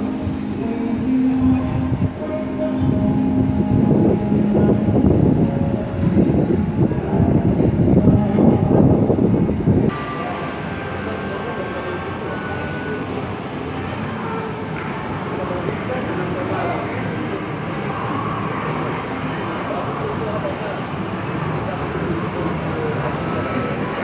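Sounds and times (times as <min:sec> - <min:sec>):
road traffic rumbling: 0:00.0 - 0:24.0.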